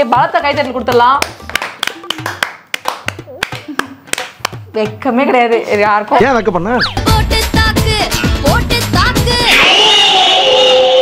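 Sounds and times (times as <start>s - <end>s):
hands clapping: 0.5s - 5.0s.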